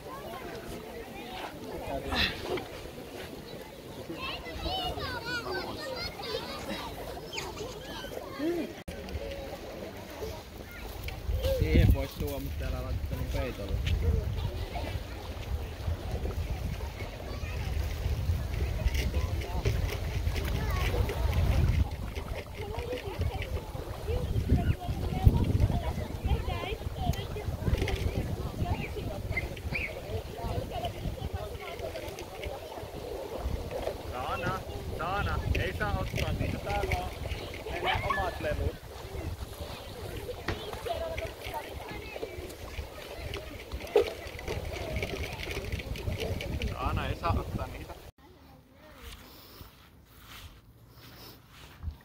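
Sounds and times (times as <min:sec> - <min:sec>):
wind buffeting microphone: 0:10.2 - 0:48.1.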